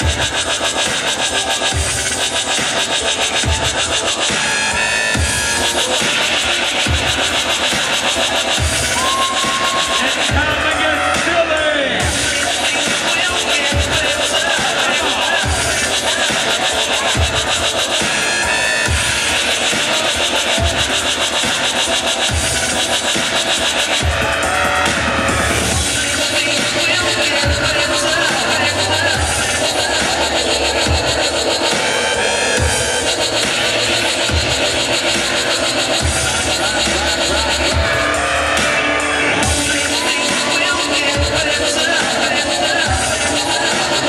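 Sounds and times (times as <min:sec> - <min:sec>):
busy hi-hats: 0:00.0 - 0:44.0
loud dubstep music: 0:00.0 - 0:44.0.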